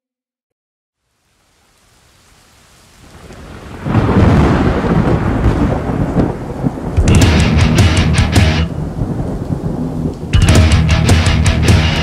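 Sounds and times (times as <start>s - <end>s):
rain hiss: 1.0s - 10.4s
deep thunder roll: 3.2s - 12.0s.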